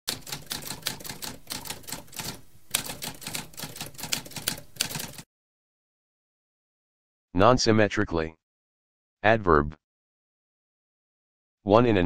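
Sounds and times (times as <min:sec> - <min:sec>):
typewriter keys clacking: 0:00.1 - 0:05.2.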